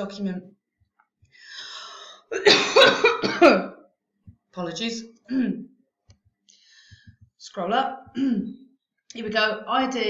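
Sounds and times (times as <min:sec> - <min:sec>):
woman coughing: 0:02.3 - 0:03.8.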